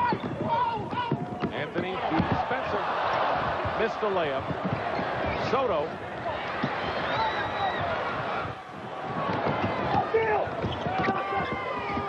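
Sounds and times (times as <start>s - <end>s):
sneakers squeaking on hardwood: 0.0s - 2.4s, 4.4s - 5.6s, 9.2s - 12.0s
arena crowd noise: 0.0s - 12.0s
basketball bouncing: 3.5s - 5.4s, 8.9s - 12.0s.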